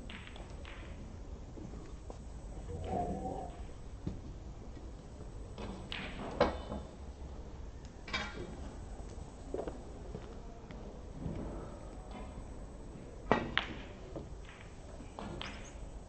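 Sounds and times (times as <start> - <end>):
snooker balls clicking: 0.0 - 1.2, 13.2 - 16.0.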